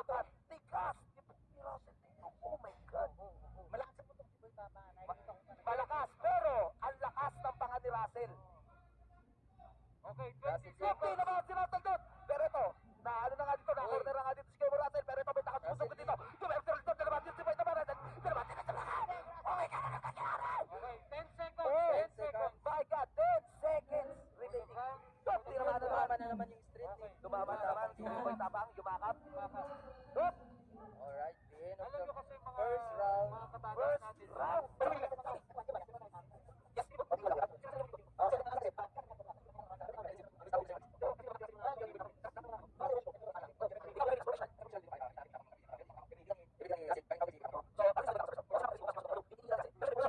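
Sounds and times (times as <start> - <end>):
faint low hum: 0.0 - 50.0
voices through a speaker: 0.0 - 50.0.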